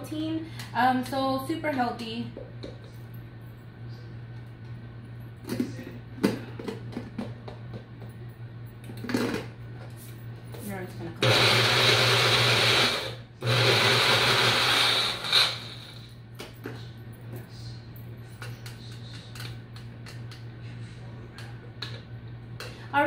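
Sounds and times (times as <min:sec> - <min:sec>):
blender motor running: 0:11.2 - 0:16.1.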